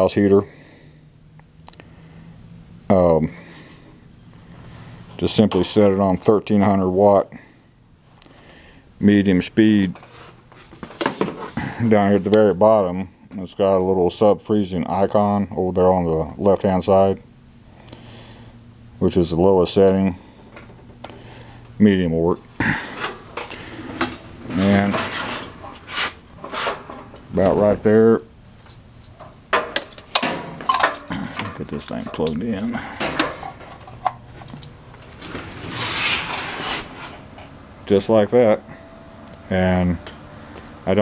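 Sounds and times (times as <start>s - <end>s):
rustling and clicking handling noise: 9.8s - 11.6s, 20.5s - 27.8s, 28.5s - 37.6s
man's voice: 27.3s - 28.3s, 31.4s - 33.0s.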